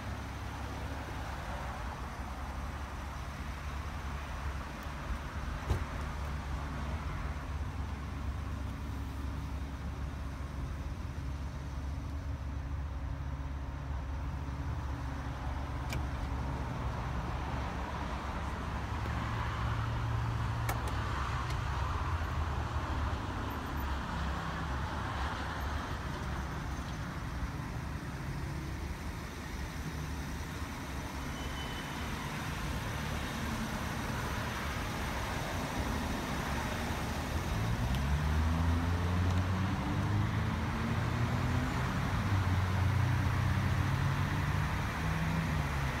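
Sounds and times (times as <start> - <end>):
traffic rumble: 0.0 - 46.0
vehicle engine accelerating: 37.5 - 45.9.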